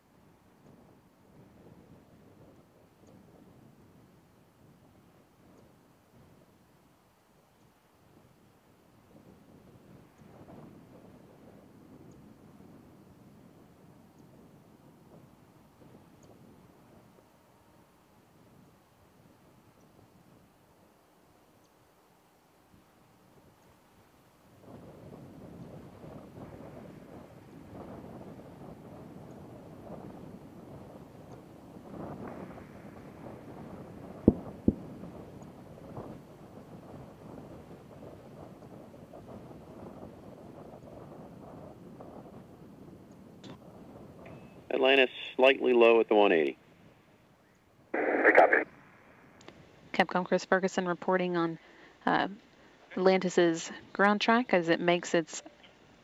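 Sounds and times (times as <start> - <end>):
wind noise on microphone: 0.0 - 7.0, 8.0 - 17.4, 18.1 - 20.9, 22.7 - 45.3, 48.0 - 50.2
faint hiss: 44.4 - 50.0, 51.5 - 54.1
radio voice: 44.7 - 46.5, 48.0 - 48.7, 52.9 - 55.5
double sonic boom: 48.0 - 49.4.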